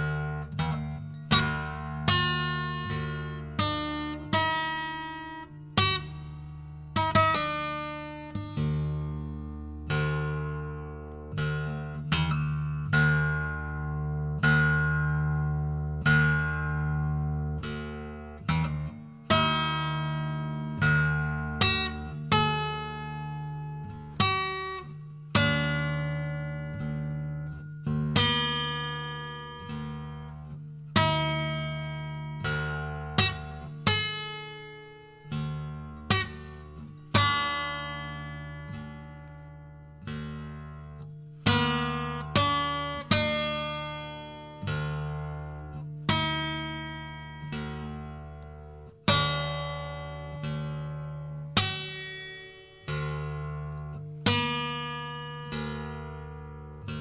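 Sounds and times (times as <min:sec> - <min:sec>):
guitar plucked notes and chords: 0:00.0 - 0:57.0.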